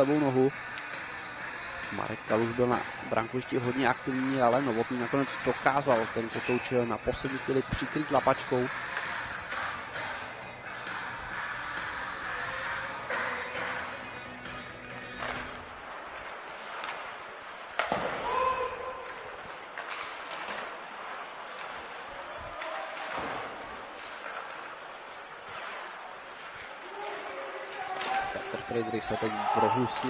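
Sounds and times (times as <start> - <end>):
arena music: 0.0 - 15.8.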